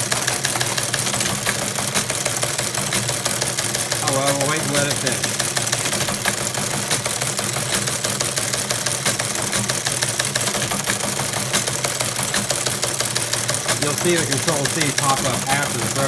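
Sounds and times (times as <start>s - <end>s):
teleprinter motor humming: 0.0s - 16.0s
typebars clattering: 0.0s - 16.0s.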